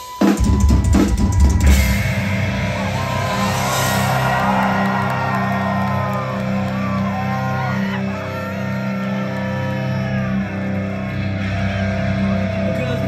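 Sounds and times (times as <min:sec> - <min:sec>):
low drone: 0:01.2 - 0:07.7.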